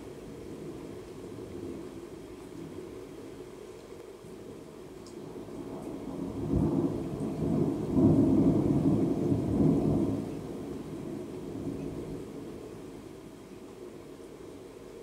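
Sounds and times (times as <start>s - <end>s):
steady rain: 0.0s - 15.0s
thunder rumbling: 6.1s - 12.3s.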